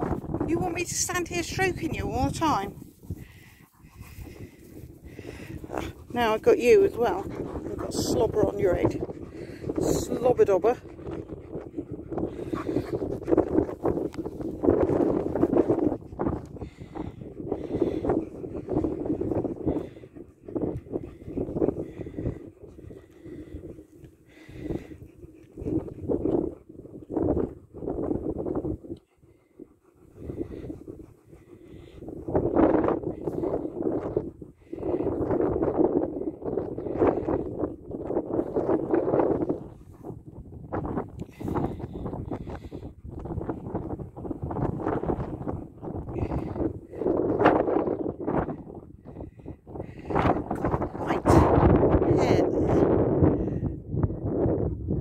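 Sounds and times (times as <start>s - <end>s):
fur brushing microphone: 0.0s - 10.9s
dogs panting and breathing: 0.0s - 54.7s
wind buffeting microphone: 0.0s - 55.0s.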